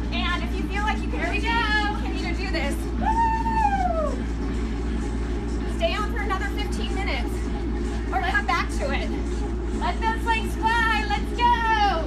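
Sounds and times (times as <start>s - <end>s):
treadmill belt and motor: 0.0s - 12.0s.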